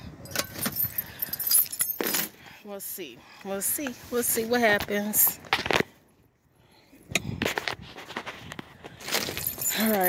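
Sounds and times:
keys jangling: 0:09.2 - 0:10.0.

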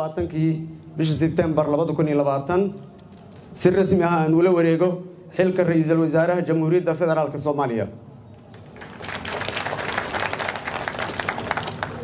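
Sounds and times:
audience applause: 0:08.5 - 0:12.0.

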